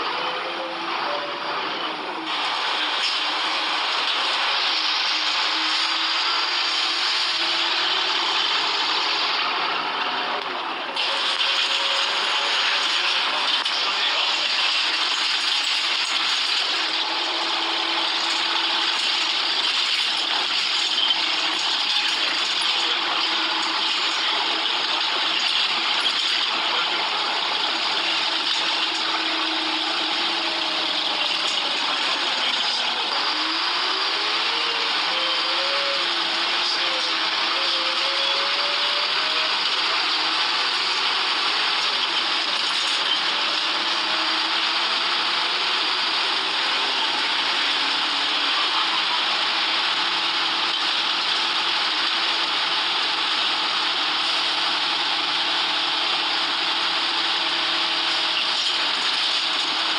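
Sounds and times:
bus engine and road noise: 0.0 - 59.9.

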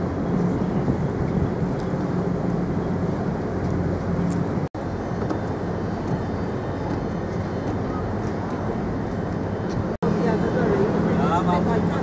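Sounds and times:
wind noise: 0.0 - 10.0
ferry engines droning: 0.0 - 12.0.

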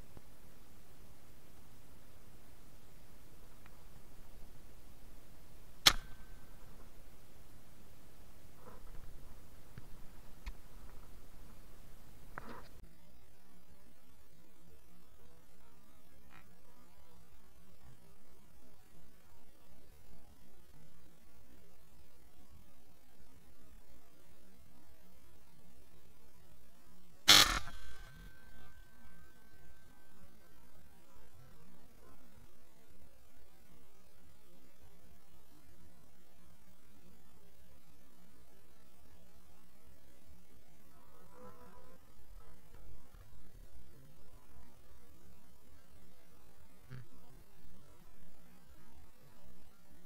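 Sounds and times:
faint steady high tone: 0.0 - 50.0
speargun firing underwater: 5.9 - 6.3.

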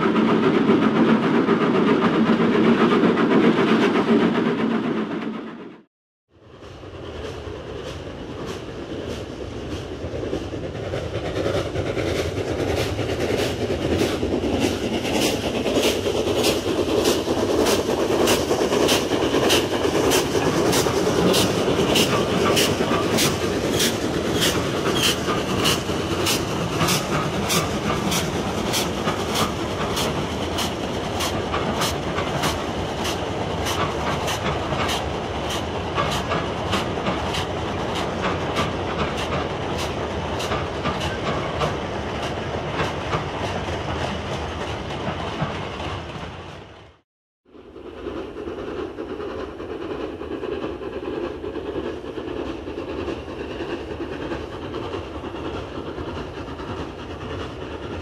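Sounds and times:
steam locomotive rumble: 0.0 - 58.0.

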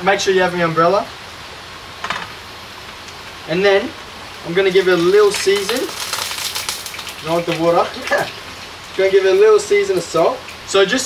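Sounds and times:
fish sizzling in frying pan: 4.1 - 10.7.

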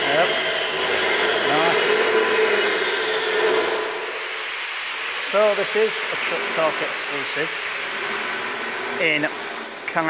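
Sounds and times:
machinery whirring and humming: 0.0 - 10.0.

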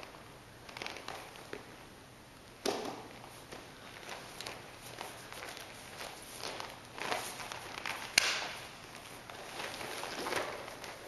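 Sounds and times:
bodies moving on exercise mats: 0.0 - 1.9, 2.6 - 11.0.

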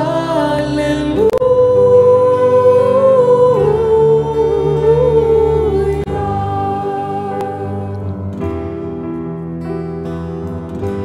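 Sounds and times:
woman singing into microphone: 0.0 - 8.3
small group singing: 0.0 - 8.4.

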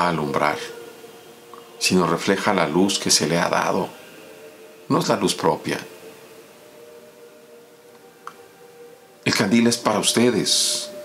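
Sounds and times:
faint drone of held tones: 0.0 - 11.0
light hiss: 0.6 - 2.1.

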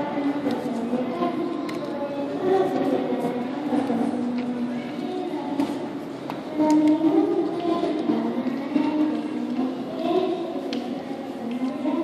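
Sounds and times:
crowd chatter: 0.0 - 12.0
girl speaking into microphone: 0.0 - 12.0.

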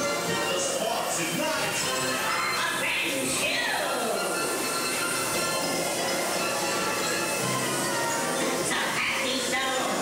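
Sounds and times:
ride music: 0.0 - 10.0.

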